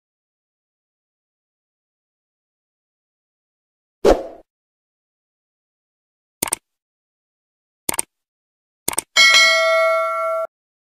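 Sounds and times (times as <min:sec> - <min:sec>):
mouse-click sound effects: 0:06.4 - 0:06.6, 0:07.9 - 0:08.1, 0:08.9 - 0:09.1
bright bell chime: 0:09.2 - 0:10.5.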